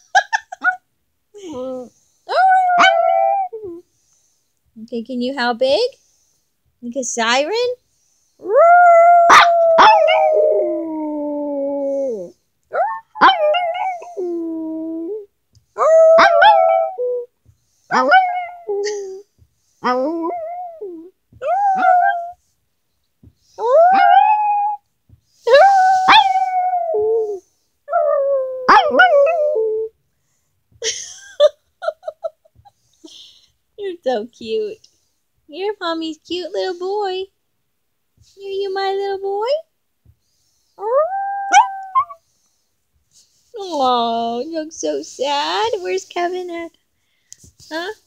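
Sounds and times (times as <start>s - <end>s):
small dog howling: 2.4s - 3.6s, 8.4s - 15.2s, 15.8s - 17.3s, 19.8s - 22.4s, 23.6s - 24.8s, 25.5s - 29.8s, 40.8s - 42.2s.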